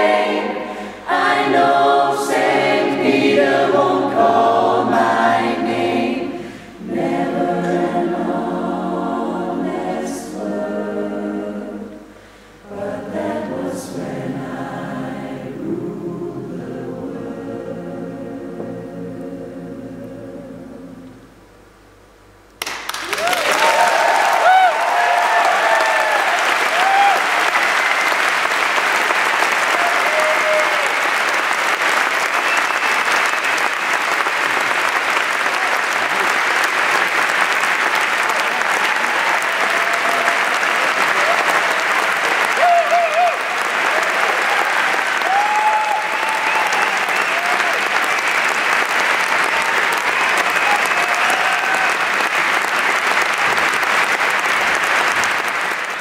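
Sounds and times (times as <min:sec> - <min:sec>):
audience applauding: 0:22.6 - 0:56.0.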